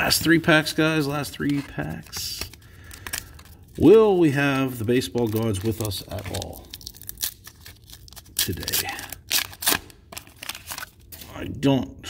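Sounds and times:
soft rustling of cards: 0.0s - 11.5s
foil wrapper crackling: 1.3s - 11.2s.

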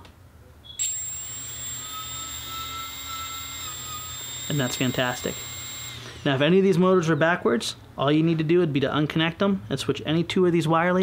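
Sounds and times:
high-pitched electric motor whine: 0.8s - 6.3s.

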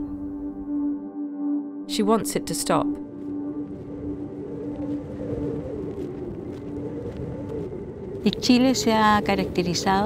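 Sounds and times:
ambient background music drone: 0.0s - 10.0s
wind rumbling on microphone: 2.6s - 10.0s.

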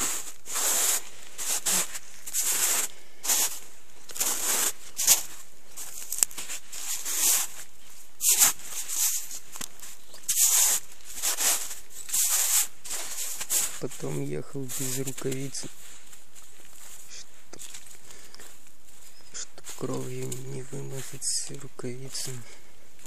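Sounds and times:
footsteps crunching through snow: 0.0s - 23.0s.

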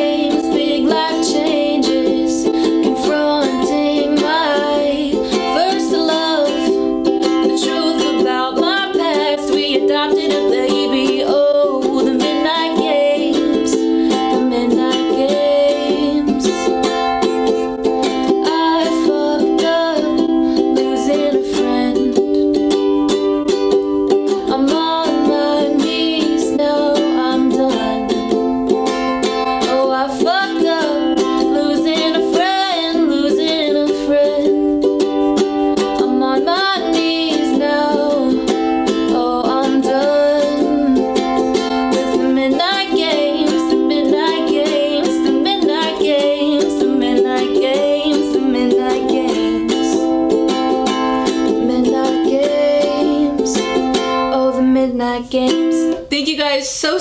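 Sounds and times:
woman singing: 0.0s - 23.5s, 24.1s - 57.0s
ukulele strumming: 0.0s - 57.0s.

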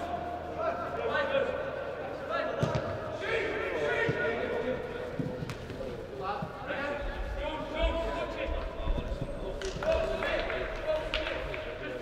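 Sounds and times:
players shouting: 0.0s - 4.9s.

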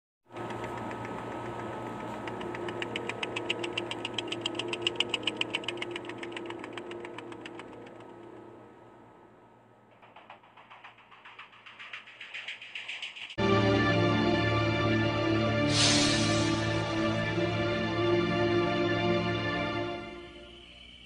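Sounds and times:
pulsing mechanical engine-like sound: 0.3s - 13.4s.

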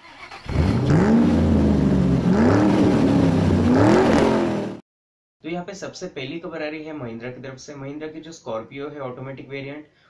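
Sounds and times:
car engine revving: 0.2s - 4.8s.

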